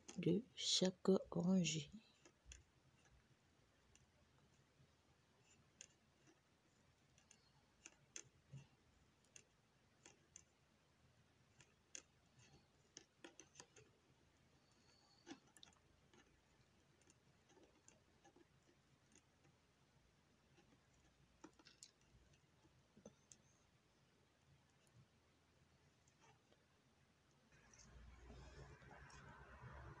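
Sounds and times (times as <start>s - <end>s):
knitting needles clicking: 0.0s - 0.4s, 1.7s - 4.2s, 5.4s - 10.6s, 11.4s - 14.0s, 14.6s - 19.6s, 20.5s - 23.6s.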